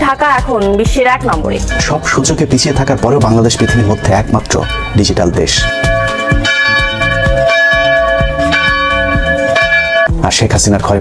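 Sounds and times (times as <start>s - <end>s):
jingle music beat: 0.0s - 11.0s
bell ringing: 1.4s - 10.2s.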